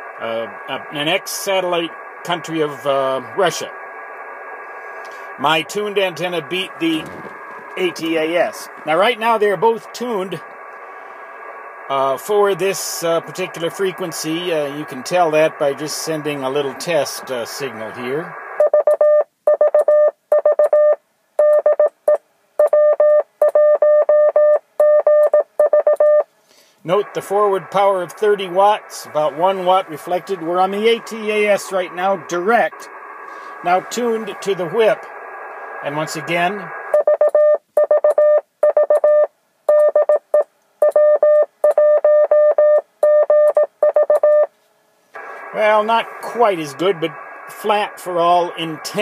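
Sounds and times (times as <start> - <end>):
morse code beeps: 18.6 - 26.3, 36.9 - 44.5.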